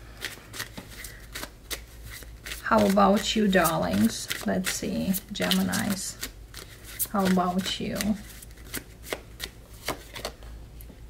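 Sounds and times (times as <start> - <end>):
cards being shuffled: 0.2 - 10.4.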